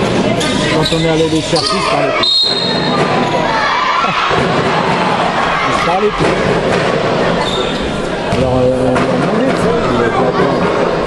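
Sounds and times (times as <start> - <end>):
echoing sports hall noise: 0.0 - 11.0.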